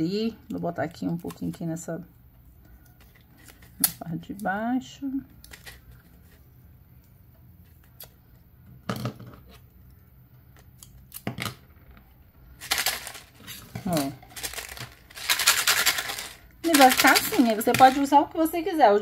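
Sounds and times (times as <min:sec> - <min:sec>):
seeds rattling in plastic bottle: 0:12.6 - 0:18.1.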